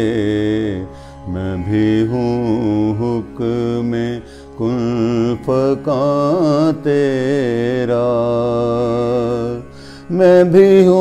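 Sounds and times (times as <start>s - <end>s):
man singing long held notes: 0.0s - 11.0s
singer breathing: 0.8s - 1.3s, 4.2s - 4.6s, 9.7s - 10.1s.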